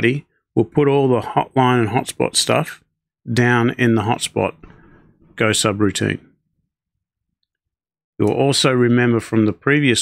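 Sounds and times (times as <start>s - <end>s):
man speaking: 0.0s - 6.4s.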